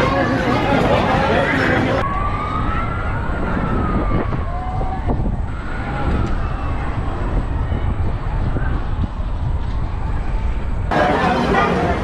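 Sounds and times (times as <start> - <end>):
wind buffeting microphone: 0.0 - 11.3
heavy rumble: 0.0 - 12.0.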